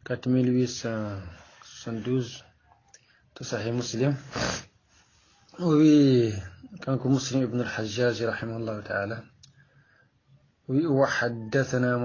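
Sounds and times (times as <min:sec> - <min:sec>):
man speaking: 0:00.0 - 0:02.5, 0:03.4 - 0:04.6, 0:05.5 - 0:09.4, 0:10.7 - 0:12.0.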